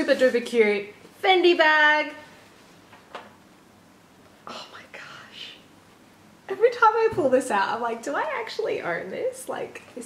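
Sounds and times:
woman whispering: 4.4s - 5.7s.

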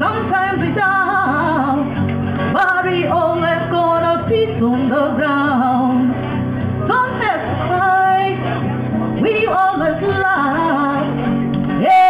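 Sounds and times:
woman singing: 0.0s - 6.2s, 6.9s - 8.5s, 9.2s - 12.0s
acoustic guitar: 0.0s - 12.0s.

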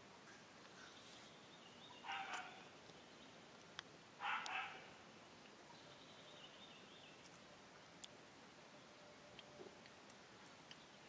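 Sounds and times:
harsh bark-like animal call: 2.0s - 2.7s, 4.2s - 4.9s.

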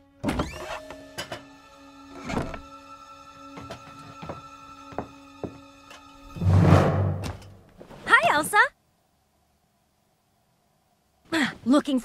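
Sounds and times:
soft music with held notes: 0.0s - 6.4s.

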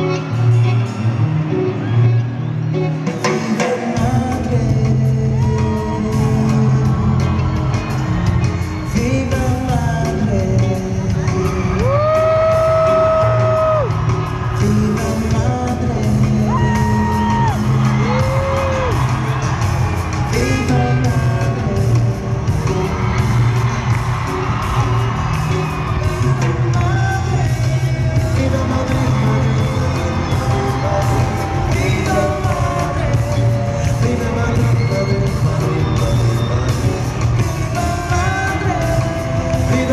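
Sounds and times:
live pop band playing: 0.0s - 39.9s
man singing: 3.1s - 19.2s, 20.0s - 23.6s, 26.1s - 39.9s
shouts and whoops: 11.3s - 14.6s, 16.5s - 20.7s.

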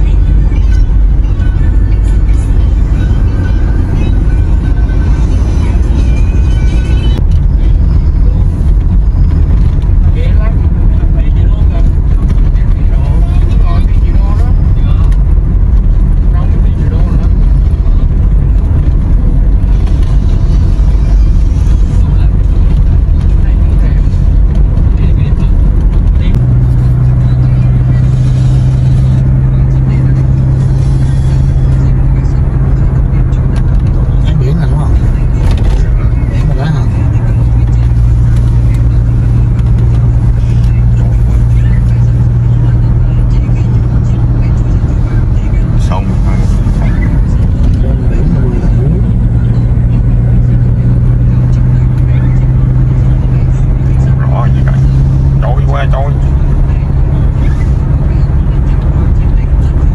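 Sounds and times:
car road noise and engine hum: 0.0s - 59.9s.

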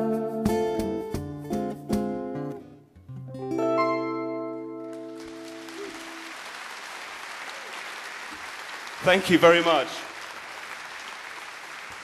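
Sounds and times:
audience applauding: 4.8s - 12.0s.

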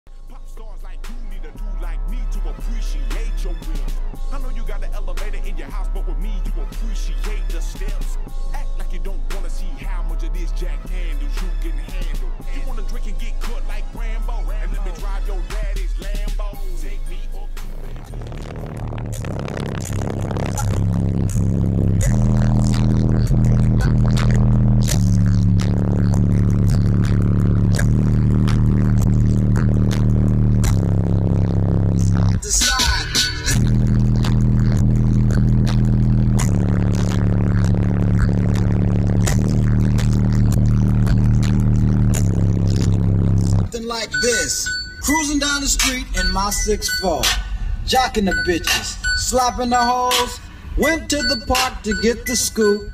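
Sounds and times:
music with heavy bass line: 0.1s - 52.9s.

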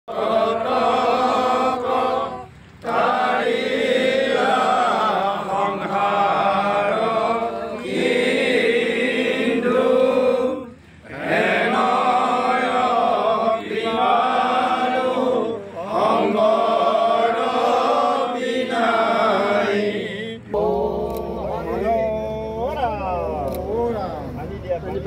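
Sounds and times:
group chanting a prayer: 0.1s - 24.4s.

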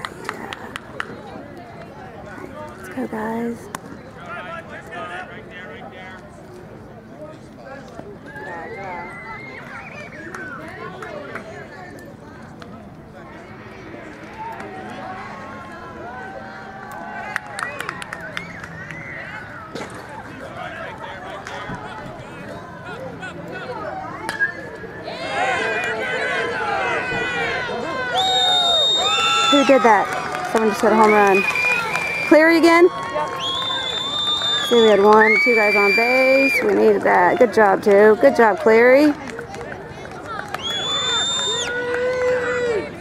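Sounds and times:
overlapping chatter of people: 0.0s - 43.0s
spectators shouting and cheering: 8.2s - 11.7s, 13.2s - 43.0s.

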